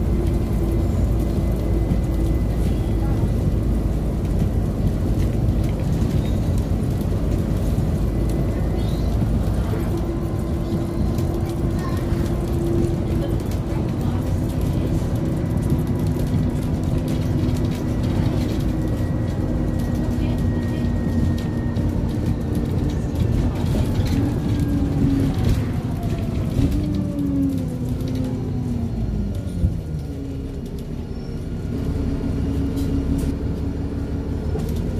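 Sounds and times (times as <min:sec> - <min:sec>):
bus engine and road rumble: 0:00.0 - 0:34.9.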